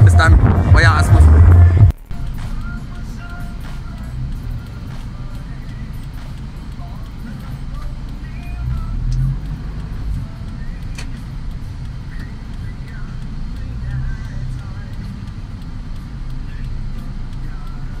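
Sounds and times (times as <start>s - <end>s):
vehicle driving rumble: 0.0s - 18.0s
sharp click: 7.4s - 12.7s.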